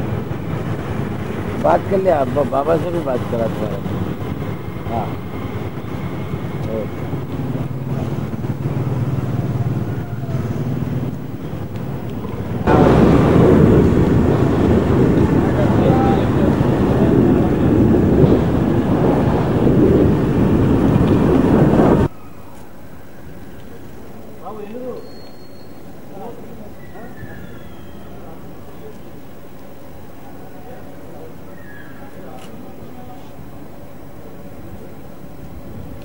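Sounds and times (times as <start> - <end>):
vehicle engine: 0.0 - 22.1
dense wash of noise and voices: 0.0 - 36.0
indistinct voices: 12.1 - 22.1.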